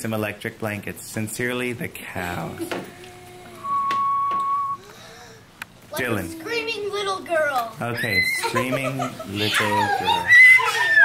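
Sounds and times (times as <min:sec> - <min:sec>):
faint voices: 0:02.1 - 0:03.9
high whistle-like tone: 0:03.2 - 0:04.8.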